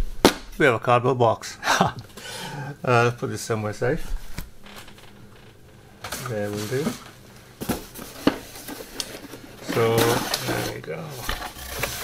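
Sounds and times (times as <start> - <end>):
cardboard rustling and scraping: 6.1 - 12.0.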